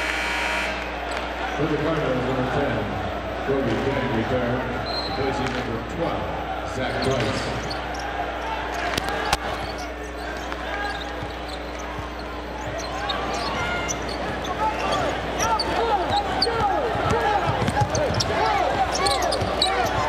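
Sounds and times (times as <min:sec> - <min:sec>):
crowd noise and voices: 0:00.0 - 0:20.0
sneaker squeaks: 0:04.8 - 0:05.4, 0:06.8 - 0:20.0.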